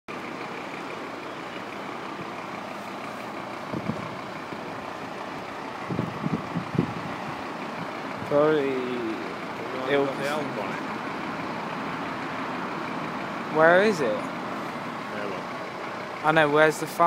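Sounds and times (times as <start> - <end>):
fire engine mechanical hum: 0.1 - 17.0.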